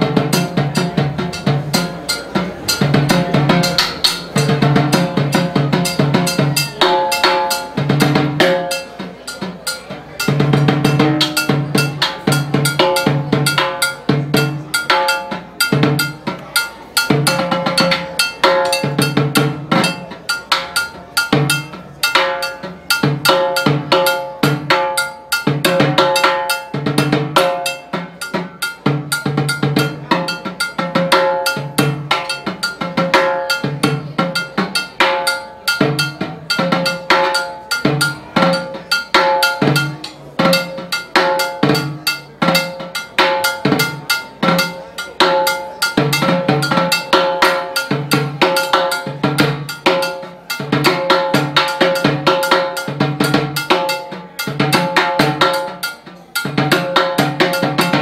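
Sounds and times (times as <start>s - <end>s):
block struck: 0.0s - 58.0s
timbales played with sticks: 0.0s - 58.0s.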